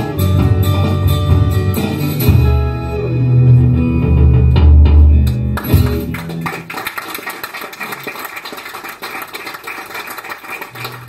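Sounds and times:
audience clapping: 0:05.2 - 0:11.0.

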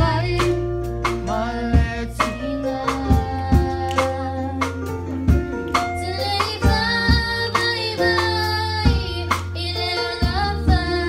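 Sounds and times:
youth choir singing: 0:00.0 - 0:04.7, 0:05.8 - 0:11.0
bass and drumbeat accompaniment: 0:00.0 - 0:11.0.

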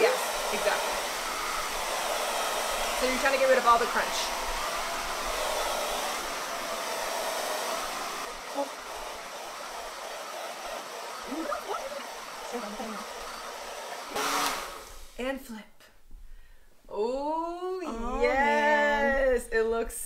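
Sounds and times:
hair dryer blowing: 0:00.0 - 0:15.2.

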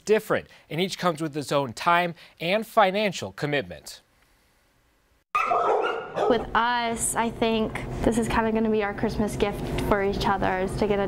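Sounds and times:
dogs barking loudly: 0:05.4 - 0:06.4.

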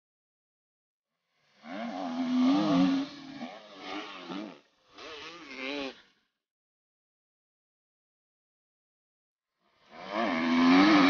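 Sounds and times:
dirt bike engine revving: 0:01.5 - 0:06.2, 0:10.0 - 0:11.0.

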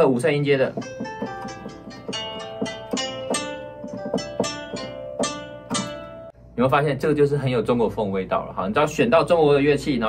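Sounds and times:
plucked zither melody: 0:00.0 - 0:06.4.

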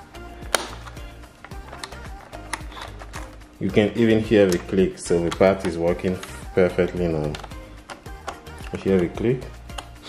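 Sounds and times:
background music with beat: 0:00.0 - 0:10.0
plastic latch clicking: 0:00.5 - 0:03.5, 0:04.4 - 0:06.3, 0:07.2 - 0:10.0.

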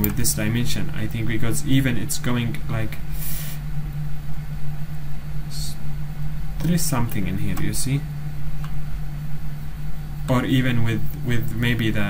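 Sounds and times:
low background hum: 0:00.0 - 0:12.0
short hiss: 0:03.1 - 0:03.6.

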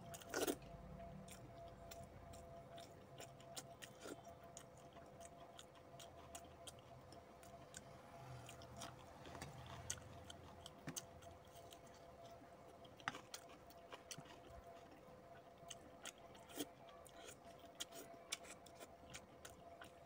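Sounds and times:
chewing: 0:00.0 - 0:20.0
faint steady hum: 0:00.0 - 0:20.0.

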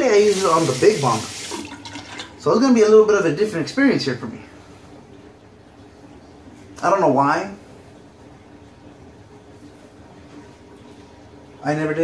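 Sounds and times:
washing machine running: 0:00.0 - 0:12.0.

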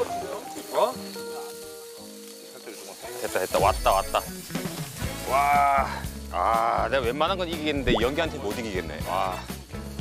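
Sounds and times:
background music: 0:00.0 - 0:10.0
meat sizzling on a grill: 0:00.0 - 0:10.0.

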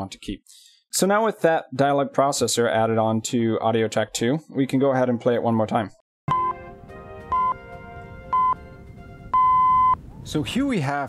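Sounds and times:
countdown beeps: 0:06.3 - 0:06.6, 0:07.3 - 0:07.6, 0:08.3 - 0:08.6, 0:09.4 - 0:10.0
electronic intro music: 0:06.3 - 0:09.9.

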